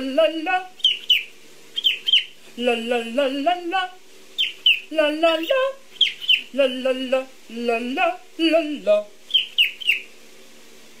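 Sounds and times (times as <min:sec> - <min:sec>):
cockatiel chirps: 0:00.8 - 0:02.4, 0:04.4 - 0:06.5, 0:09.3 - 0:10.1.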